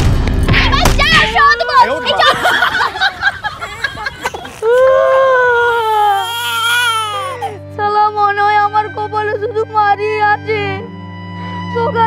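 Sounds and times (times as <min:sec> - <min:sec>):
string music: 0:00.2 - 0:12.0
crying wail: 0:01.3 - 0:07.6.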